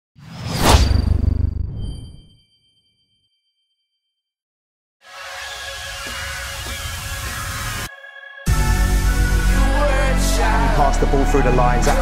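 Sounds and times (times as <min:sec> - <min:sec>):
whoosh: 0:00.2 - 0:02.4.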